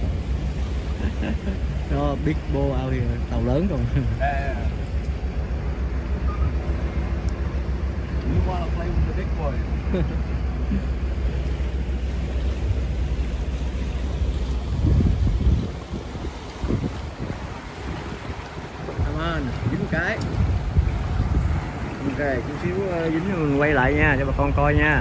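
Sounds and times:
outboard motors rumbling: 0.0s - 25.0s
water rushing past hull: 0.0s - 25.0s
wind buffeting microphone: 0.0s - 25.0s.

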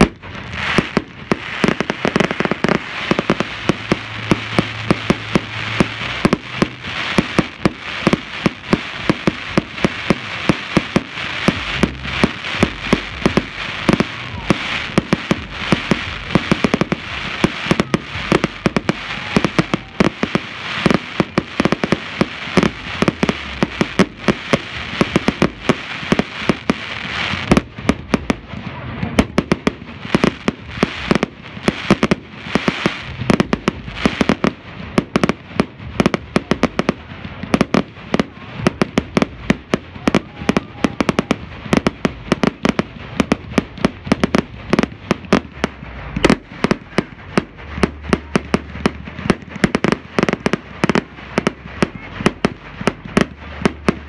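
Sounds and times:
crackle of firework stars: 0.0s - 54.0s.

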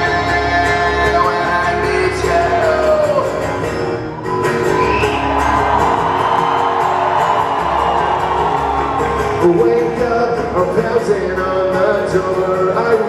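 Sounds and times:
acoustic guitar strumming: 0.0s - 13.0s
crowd cheering and whooping: 4.2s - 10.1s.

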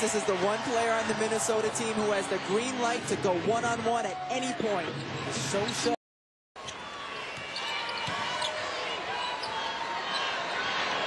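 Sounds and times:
crowd noise: 0.0s - 6.0s, 6.6s - 11.0s
shoe squeaks: 7.5s - 8.6s.

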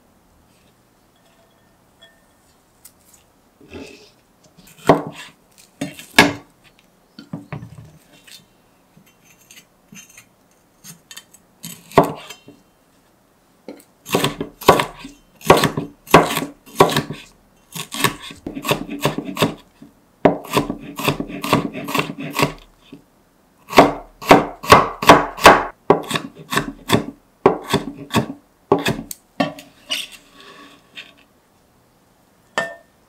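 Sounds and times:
knife blade scraping board: 14.1s - 19.6s, 20.4s - 22.7s, 27.6s - 31.2s
knife chopping on plastic board: 14.1s - 19.6s, 20.2s - 22.7s, 23.7s - 29.1s.

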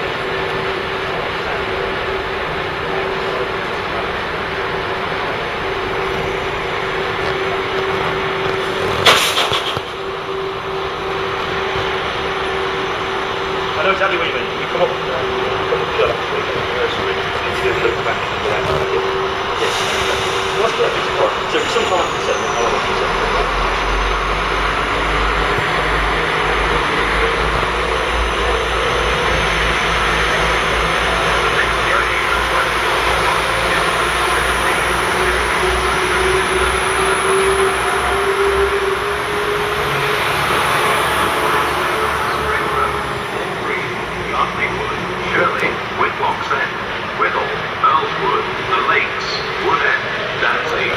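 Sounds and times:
low hum: 0.0s - 48.8s
diesel train engine: 0.0s - 50.9s
train wheel noise: 0.0s - 50.9s
rising tone: 4.8s - 46.2s.

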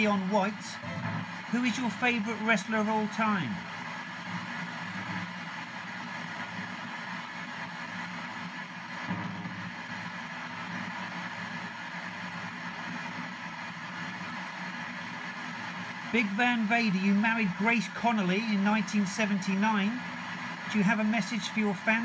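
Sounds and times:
radio static hiss: 0.0s - 22.0s.

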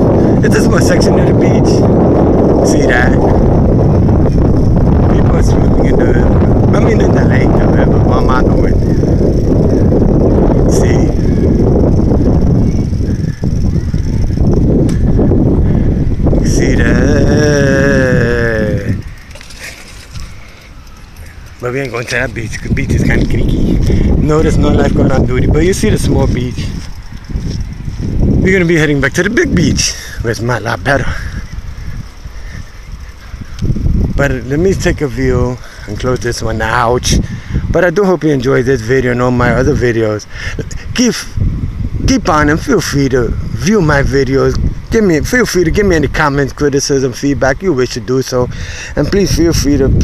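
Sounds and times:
bicycle tyres on pavement: 0.0s - 50.0s
wind buffeting microphone: 0.0s - 50.0s
bicycle clicks and knocks: 19.0s - 23.9s.

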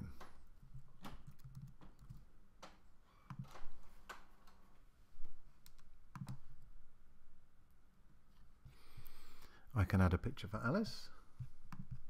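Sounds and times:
keyboard and mouse clicks: 0.1s - 3.6s, 5.6s - 6.4s, 11.7s - 12.0s.

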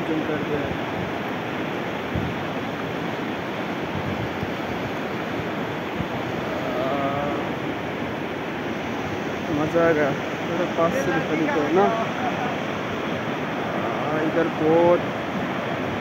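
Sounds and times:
river rushing over rapids: 0.0s - 16.0s.

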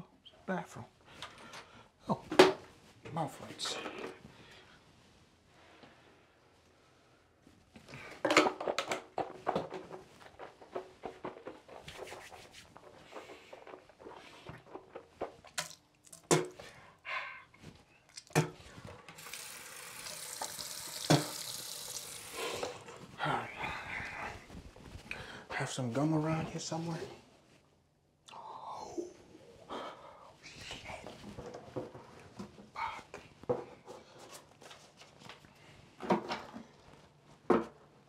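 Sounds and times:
tap running: 19.1s - 22.8s
knocks and clatter at a sink: 21.0s - 21.5s.

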